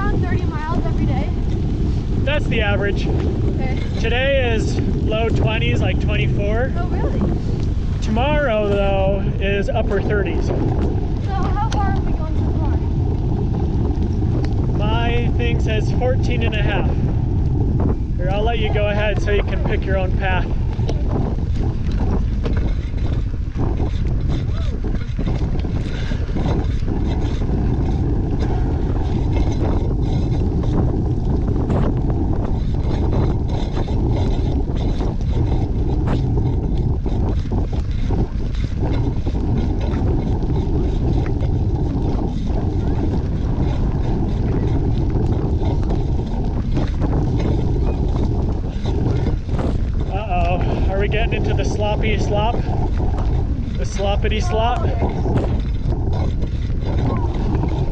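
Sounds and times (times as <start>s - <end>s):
tyres on wet dirt road: 0.0s - 57.9s
wind rumble on microphone: 0.0s - 57.9s
bicycle clicks and rattles: 18.3s - 54.4s.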